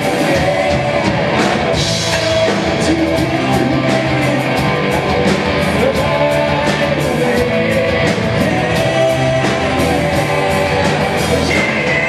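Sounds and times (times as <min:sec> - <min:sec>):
drum kit with cymbal beat: 0:00.0 - 0:12.0
electric guitars: 0:00.0 - 0:12.0
person singing: 0:00.0 - 0:12.0.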